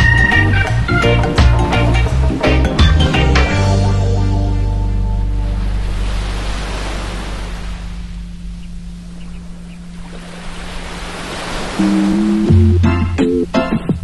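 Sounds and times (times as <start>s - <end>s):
sustained keyboard chords: 0.0s - 11.0s, 11.8s - 14.0s
low held bass note: 3.4s - 11.0s, 11.8s - 13.4s
waves washing up a sandy beach: 5.6s - 8.0s, 10.2s - 12.4s.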